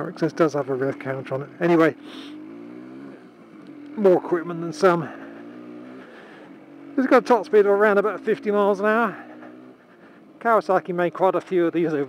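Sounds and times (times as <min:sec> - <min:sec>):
two-stroke motorcycle engine running: 0:00.0 - 0:12.0.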